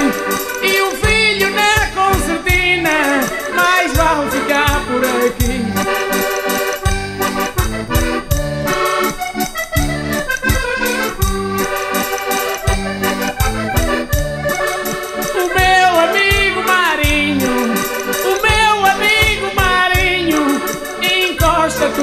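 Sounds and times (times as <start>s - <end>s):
button accordion playing melody: 0.0s - 22.0s
steady bass beat: 0.0s - 22.0s.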